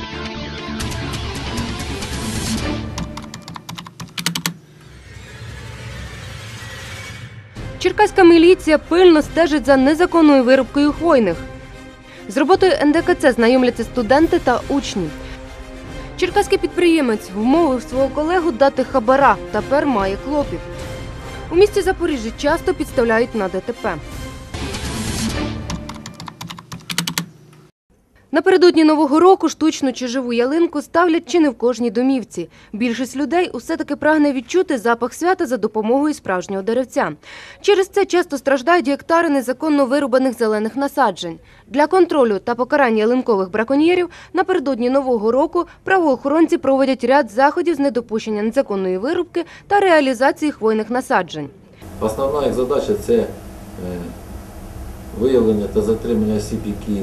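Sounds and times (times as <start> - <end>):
computer keyboard typing: 3.0 - 4.6, 25.7 - 27.3
low music bed: 51.8 - 57.0.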